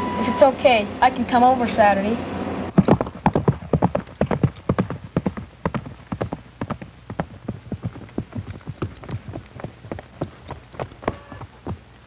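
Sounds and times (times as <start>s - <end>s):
horse hooves on dirt: 2.7s - 12.0s.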